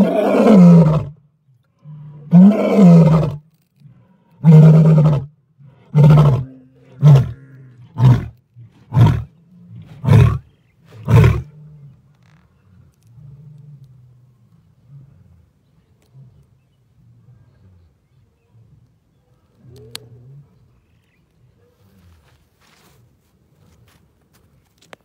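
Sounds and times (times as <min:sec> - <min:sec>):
lion roaring: 0:00.0 - 0:01.2, 0:01.8 - 0:12.0.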